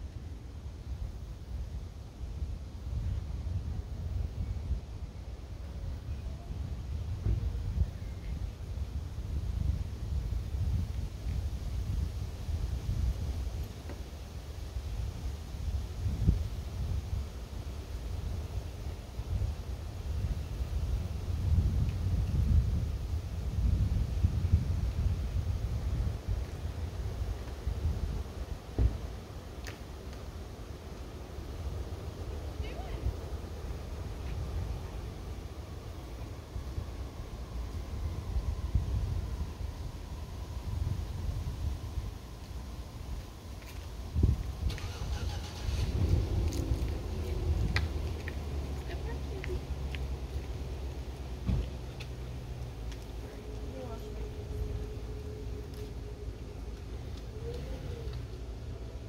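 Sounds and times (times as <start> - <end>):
low outdoor rumble: 0.0 - 59.0
wind buffeting microphone: 0.8 - 29.6, 31.4 - 59.0
brief thump: 28.8 - 29.0, 51.4 - 51.6.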